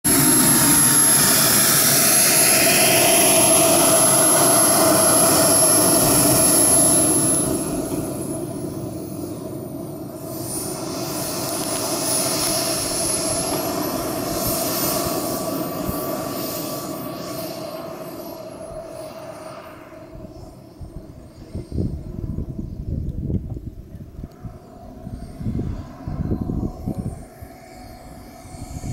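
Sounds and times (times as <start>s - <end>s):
model jet engine whine: 0.0s - 28.9s.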